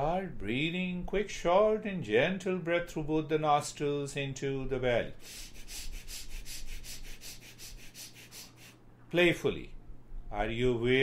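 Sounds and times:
quick sniffing breaths: 5.2 - 8.9.

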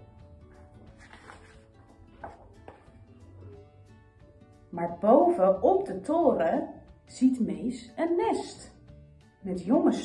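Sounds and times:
soft background music: 0.0 - 10.0
paper page rustling: 0.8 - 2.9.

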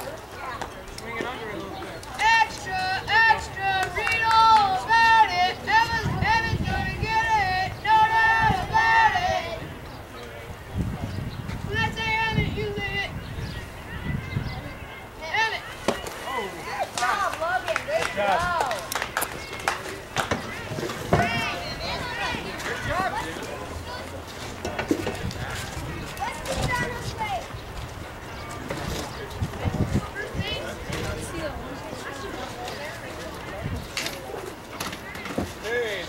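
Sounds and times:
distant voices and chatter: 0.0 - 36.0
crowd cheering and yelling: 11.7 - 24.2
children shouting: 20.3 - 24.2.

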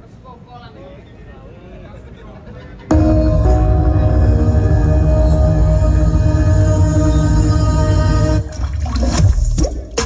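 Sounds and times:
deep bass sweeps: 2.9 - 9.8
demo music through loudspeakers: 2.9 - 10.0.

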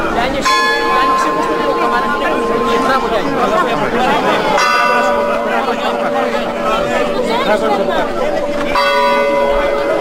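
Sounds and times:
church bell tolling: 0.0 - 10.0
crowd chatter: 0.0 - 10.0.

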